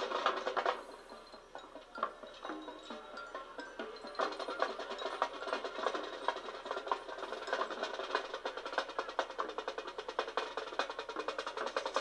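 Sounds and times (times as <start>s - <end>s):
marching band playing: 0.0s - 1.2s, 2.2s - 12.0s
sharp percussion strikes: 0.0s - 12.0s.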